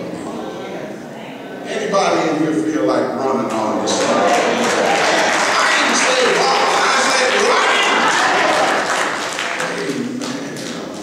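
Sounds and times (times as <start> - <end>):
voices: 0.0 - 11.0
congregation applauding: 3.5 - 11.0.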